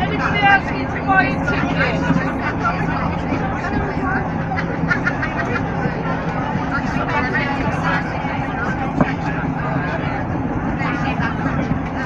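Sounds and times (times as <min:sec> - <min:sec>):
faint voices: 0:00.0 - 0:12.0
train carriage running noise: 0:00.0 - 0:12.0.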